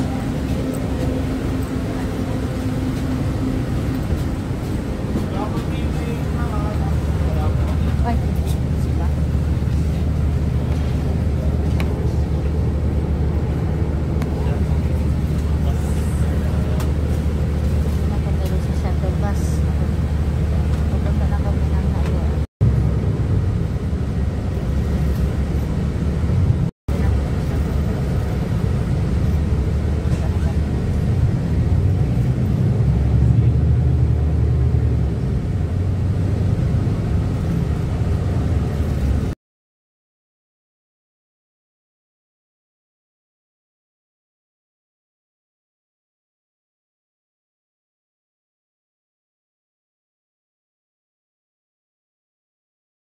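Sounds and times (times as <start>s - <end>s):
bus engine and road rumble: 0.0s - 39.4s.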